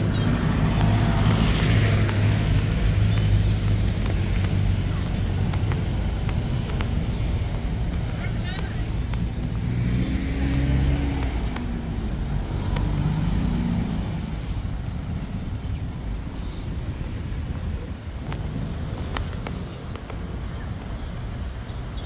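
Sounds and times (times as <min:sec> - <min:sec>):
motorcycle passing: 0:00.0 - 0:19.0
cars passing: 0:00.0 - 0:22.0
people's voices: 0:02.1 - 0:14.6.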